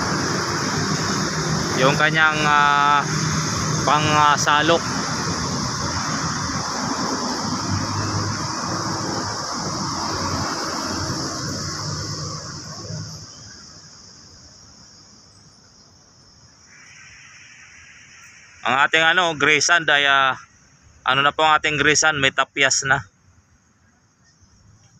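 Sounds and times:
engine humming: 0.0 - 14.0.

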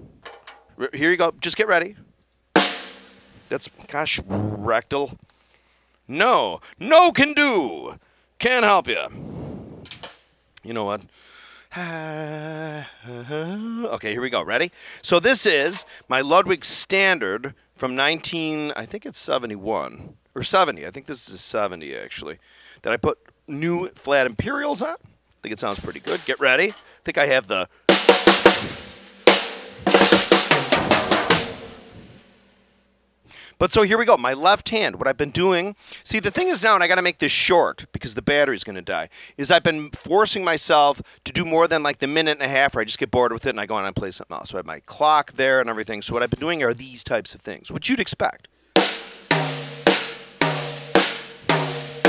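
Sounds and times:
drum kit played with sticks: 2.6 - 4.8, 25.7 - 26.9, 27.9 - 32.7, 48.8 - 52.0.

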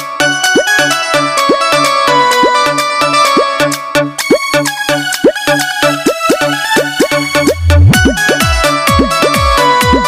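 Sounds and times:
electronic keyboard melody: 0.0 - 10.0
electronic dance beat: 0.5 - 10.0
bass note: 7.4 - 8.2.

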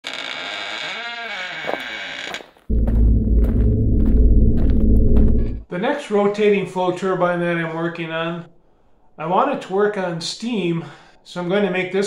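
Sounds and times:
deep rumble: 2.7 - 5.6.

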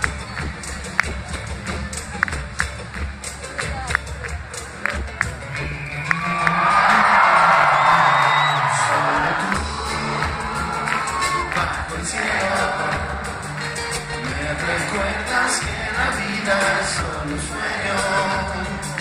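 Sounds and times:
live band music: 0.0 - 19.0
audience cheering and whooping: 5.6 - 19.0.

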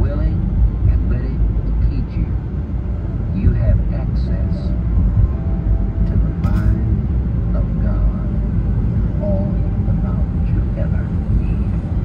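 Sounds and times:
faint car radio voice: 0.0 - 2.5, 3.2 - 12.0
car road and engine rumble: 0.0 - 12.0.

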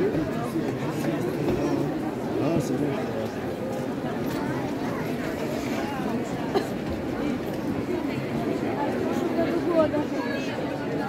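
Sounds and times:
crowd of people talking: 0.0 - 11.0.

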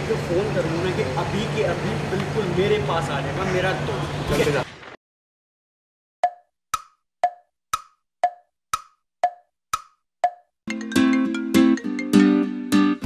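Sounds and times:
wood-block tick-tock knocks: 6.2 - 10.6
background music: 10.7 - 13.0.

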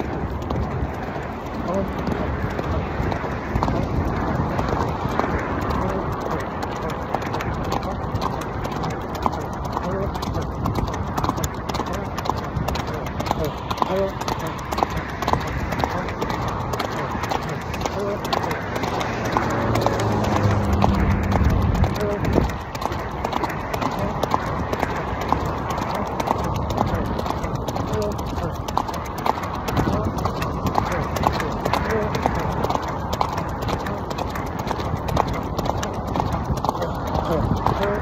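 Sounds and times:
horse hoofbeats on sand: 0.0 - 38.0
wind on microphone: 0.0 - 38.0.

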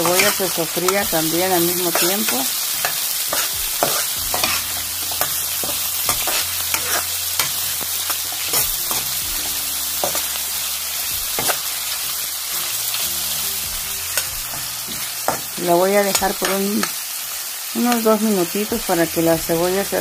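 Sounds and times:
oil sizzling with pops: 0.0 - 20.0.

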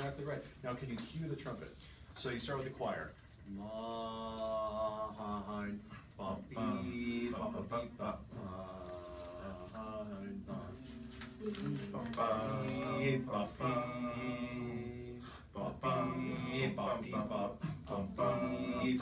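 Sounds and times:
group singing a cappella: 3.5 - 19.0.

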